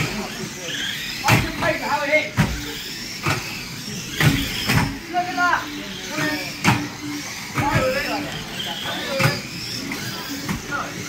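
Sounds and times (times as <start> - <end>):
faint motor whine: 0.0 - 11.0
toy cars colliding knocks: 1.2 - 1.7, 2.3 - 5.0, 9.1 - 10.8.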